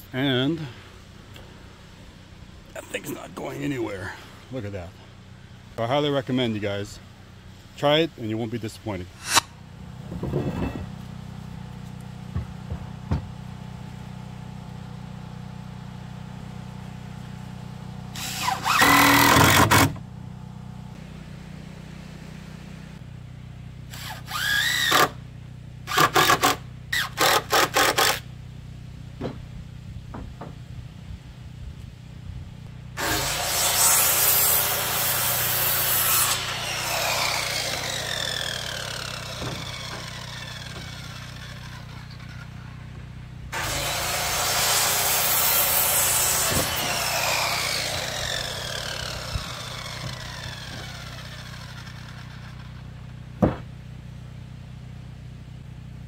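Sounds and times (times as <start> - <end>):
circular saw cutting board: 9.2 - 9.6, 18.2 - 20.0, 33.0 - 53.2
cordless drill driving screws: 18.2 - 20.0, 23.9 - 25.2, 36.9 - 42.5, 46.4 - 52.7.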